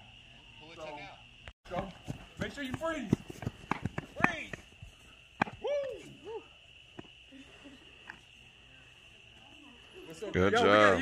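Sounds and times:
crickets trilling: 0.0 - 11.0
person whooping: 5.5 - 6.6.

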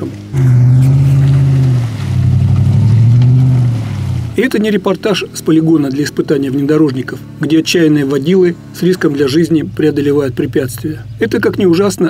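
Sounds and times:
vehicle engine straining at high revs: 0.0 - 12.0.

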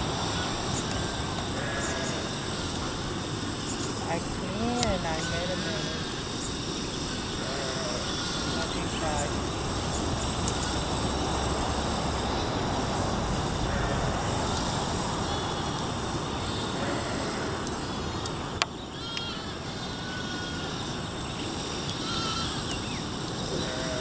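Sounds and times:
outdoor background noise: 0.0 - 24.0.

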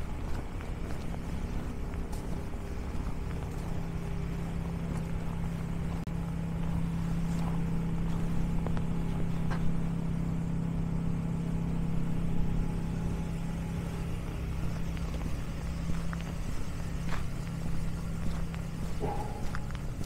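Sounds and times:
engine idling: 0.0 - 20.0.

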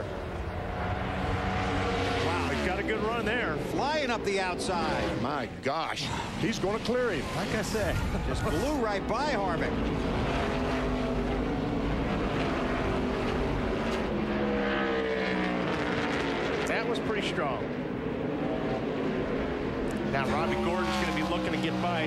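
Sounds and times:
race car engines: 0.0 - 22.0.

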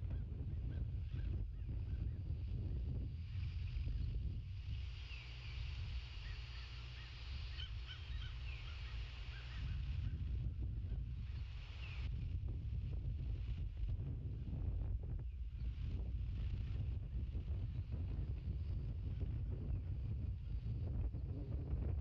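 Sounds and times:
wind rumbling on microphone: 0.0 - 22.0
distant birds chirping: 4.8 - 9.8.

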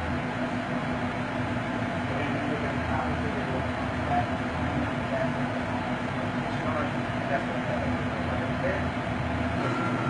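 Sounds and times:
machine running with low hum: 0.0 - 10.0.

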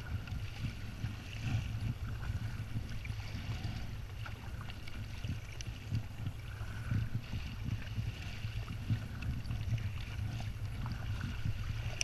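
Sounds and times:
kayak paddle strokes: 0.0 - 12.0
steady low rumble: 0.0 - 12.0
water splashing against hull: 0.0 - 12.0.

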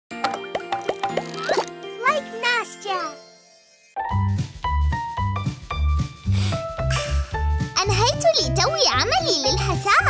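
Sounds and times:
playful children's jingle: 0.2 - 4.3
child's voice: 2.0 - 3.2, 7.8 - 10.0.

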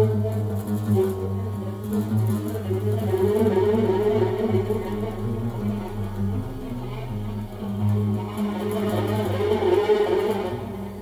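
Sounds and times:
oud and viola duet: 0.0 - 11.0.

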